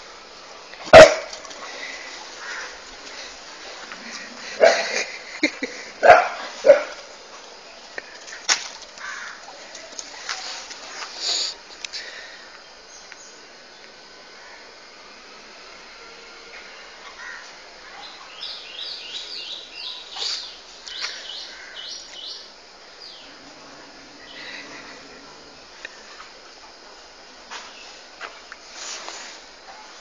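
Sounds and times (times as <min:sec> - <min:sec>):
dog barking: 0:00.9 - 0:01.4, 0:06.0 - 0:07.1.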